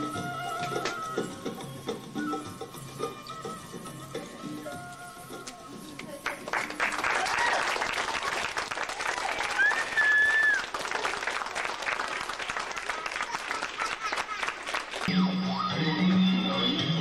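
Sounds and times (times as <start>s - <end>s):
audience applauding: 6.2s - 15.1s.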